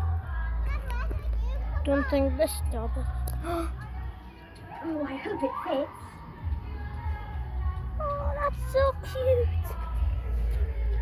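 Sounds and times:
children chattering: 0:00.5 - 0:06.2
steady low rumble: 0:05.9 - 0:11.0.

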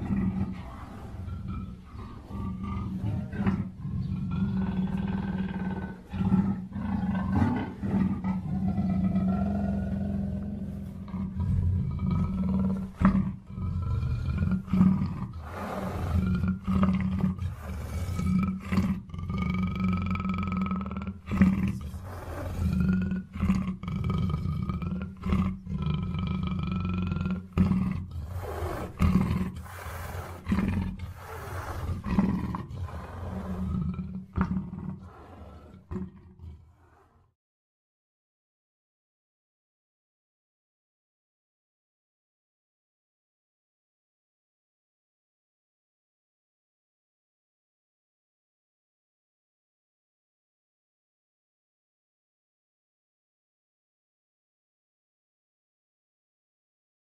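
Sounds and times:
big cat roaring: 0:00.0 - 0:37.4.

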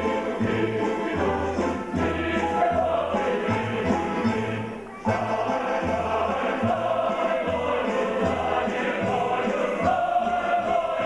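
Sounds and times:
folk choir singing: 0:00.0 - 0:11.0.

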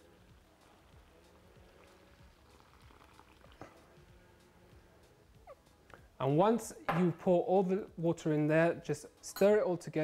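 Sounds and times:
water pouring into bowl: 0:00.1 - 0:03.8.

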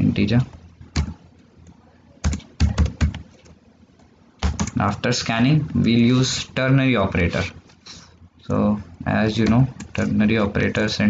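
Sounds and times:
keystrokes on computer keyboard: 0:00.9 - 0:03.6, 0:04.4 - 0:04.8.

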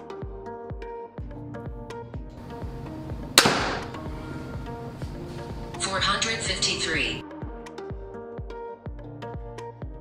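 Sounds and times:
background music with steady beat: 0:00.0 - 0:10.0
crossbow firing crack: 0:03.2 - 0:04.1.

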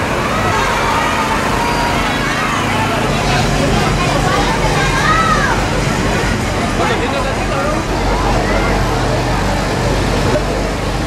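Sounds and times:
crowd voices: 0:00.0 - 0:11.0
tractor engine running: 0:00.0 - 0:11.0.

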